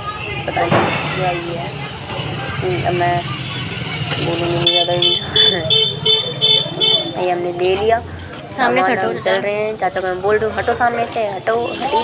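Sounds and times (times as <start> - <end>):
vehicle horn short electronic beeps: 4.6 - 7.2.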